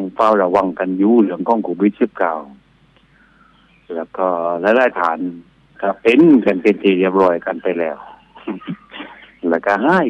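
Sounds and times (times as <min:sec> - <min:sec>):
man speaking on radio: 0:00.0 - 0:02.6, 0:03.9 - 0:10.0.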